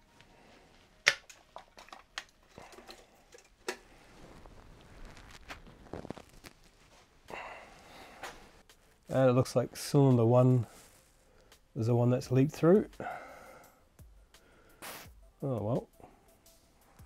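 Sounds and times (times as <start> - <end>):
scraping and rustling of handling: 1.6 - 7.1.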